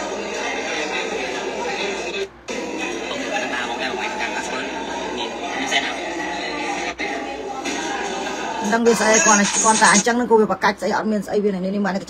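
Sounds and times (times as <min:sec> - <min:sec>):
music playing: 0:00.0 - 0:10.1
voices: 0:00.0 - 0:12.0.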